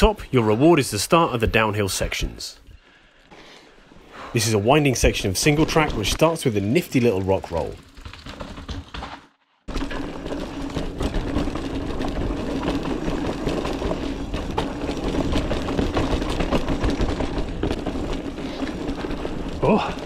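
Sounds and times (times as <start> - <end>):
mountain bike rattling over dirt trail: 4.9 - 20.0.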